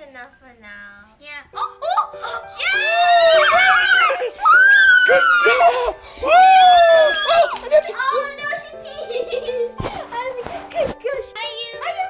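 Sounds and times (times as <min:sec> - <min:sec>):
faint background music: 0:00.0 - 0:12.0
girls shrieking and cheering: 0:02.5 - 0:08.3.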